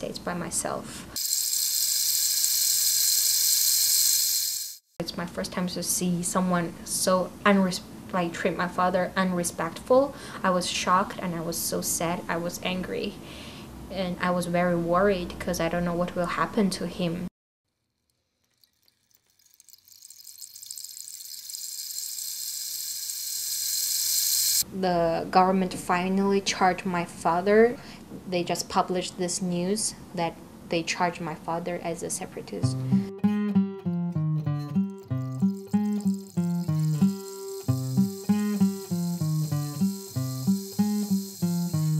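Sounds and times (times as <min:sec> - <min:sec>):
high-pitched hiss: 0:01.2 - 0:04.8, 0:21.1 - 0:24.6, 0:35.2 - 0:41.9.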